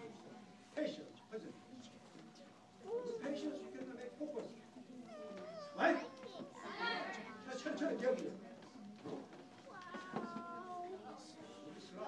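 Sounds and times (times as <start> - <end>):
small child whining: 5.0 - 7.5, 9.7 - 11.1
child shouting: 5.8 - 7.4.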